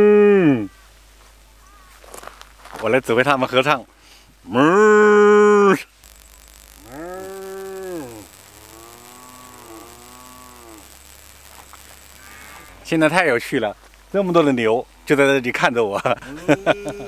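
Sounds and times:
cows mooing: 6.8s - 10.9s.

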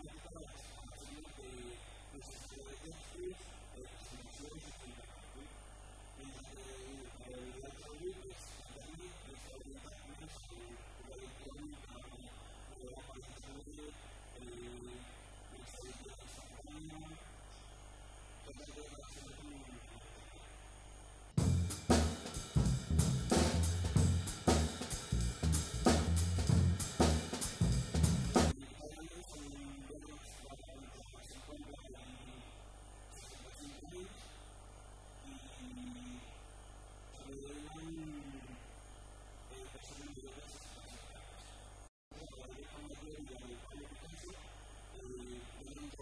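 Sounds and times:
electrical mains hum: 0.0s - 46.0s.

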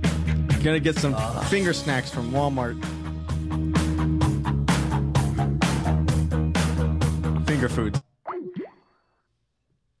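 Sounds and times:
boing sound effect: 8.3s - 8.8s.

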